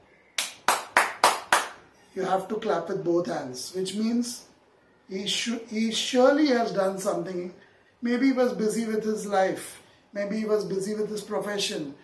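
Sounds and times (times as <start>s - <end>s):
hands clapping: 0.4s - 1.8s.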